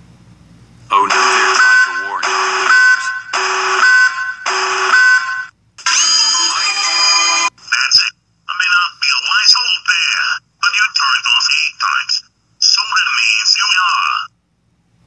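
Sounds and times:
distorted alarm blasts: 0:00.9 - 0:07.5.

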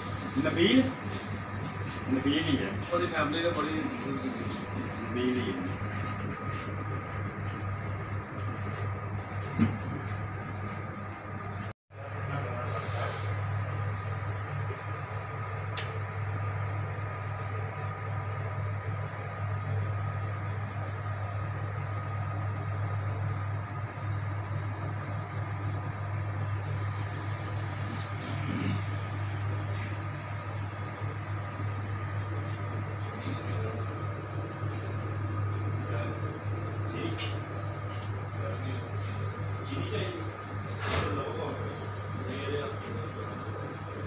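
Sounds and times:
machine hum with whine: 0:00.0 - 0:44.0.

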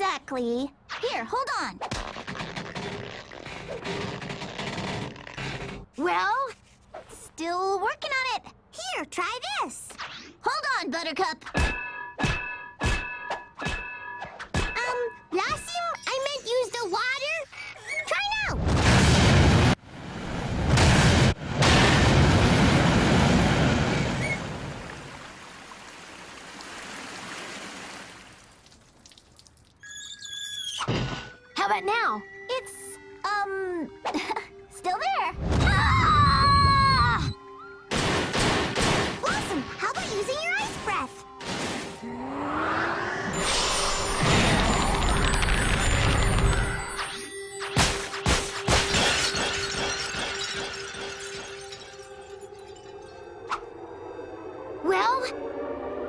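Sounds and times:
faint chiming tones: 0:51.0 - 0:56.0.

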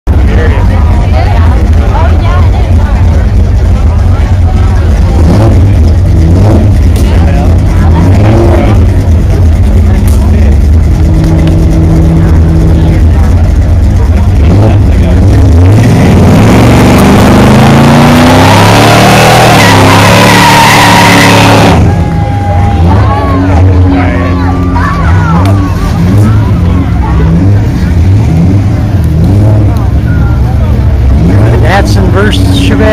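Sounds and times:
car engines idling: 0:00.0 - 0:32.9
car engine revving up: 0:00.1 - 0:32.9
spinning tyres hissing: 0:00.1 - 0:32.9.

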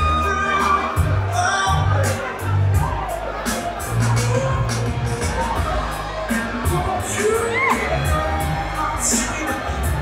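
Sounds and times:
crowd cheering and whooping: 0:00.0 - 0:10.0
music: 0:00.0 - 0:10.0.

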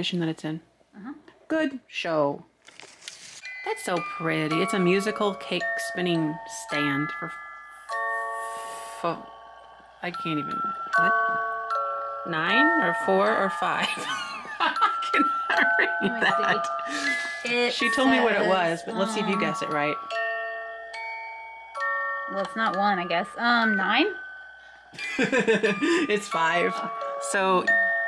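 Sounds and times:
music box playing a tune: 0:03.4 - 0:28.0.

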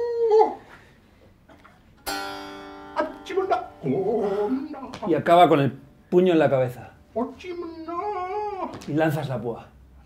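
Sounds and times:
high wavering cry: 0:00.0 - 0:00.7, 0:02.1 - 0:05.1, 0:07.0 - 0:08.8.

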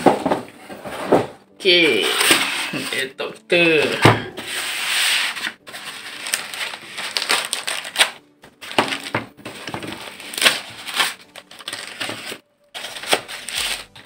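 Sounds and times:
foam rubbing and scraping: 0:00.6 - 0:03.1, 0:04.4 - 0:07.9, 0:09.4 - 0:14.0
plastic rustling: 0:03.8 - 0:14.0.

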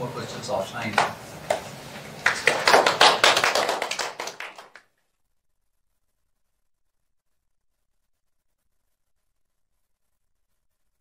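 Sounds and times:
small audience applauding: 0:00.9 - 0:04.9.

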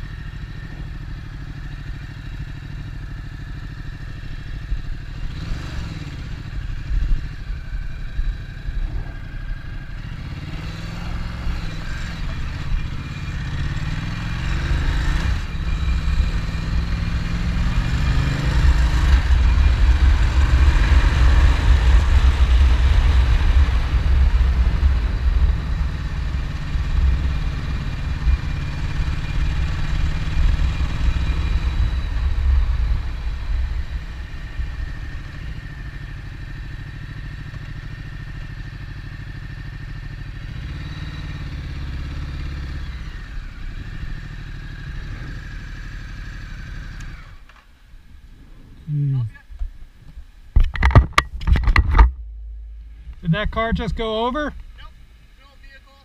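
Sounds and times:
motorcycle engine running: 0:00.0 - 0:49.8, 0:50.4 - 0:56.0
road and wind noise: 0:00.0 - 0:56.0.

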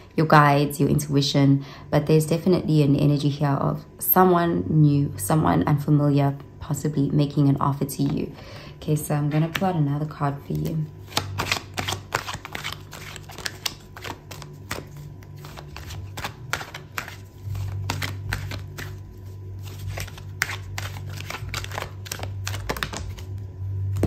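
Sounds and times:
low steady hum: 0:00.0 - 0:24.0
cards being shuffled: 0:10.4 - 0:24.0.

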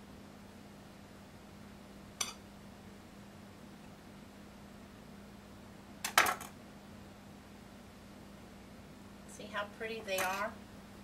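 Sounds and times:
faint steady hum: 0:00.0 - 0:11.0
knife clinking against plate: 0:02.2 - 0:02.4.

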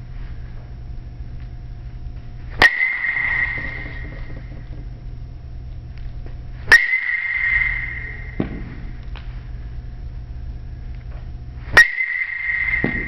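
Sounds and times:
ball hitting metal bat: 0:02.6 - 0:05.1, 0:06.6 - 0:09.0, 0:11.7 - 0:13.0.

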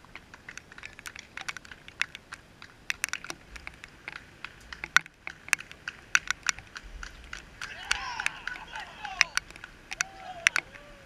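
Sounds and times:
raindrops ticking on camera housing: 0:00.0 - 0:11.0.

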